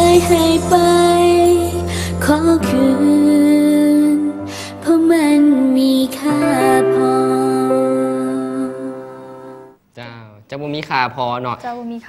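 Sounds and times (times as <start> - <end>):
sustained song chord: 0.0 - 9.8.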